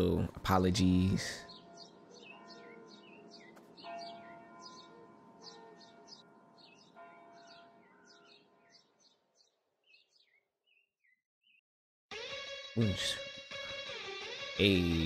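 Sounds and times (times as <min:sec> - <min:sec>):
faint birds chirping: 0:00.0 - 0:11.6.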